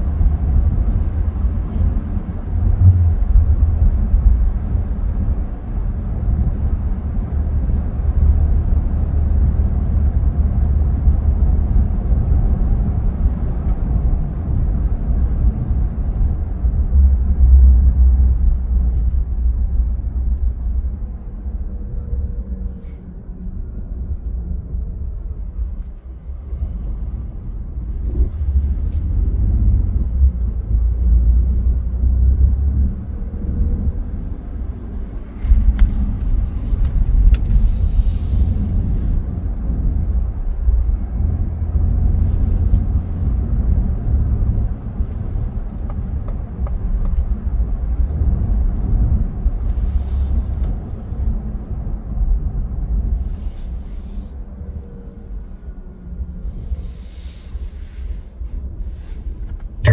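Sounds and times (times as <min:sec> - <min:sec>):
car road and engine rumble: 0:00.0 - 0:59.9.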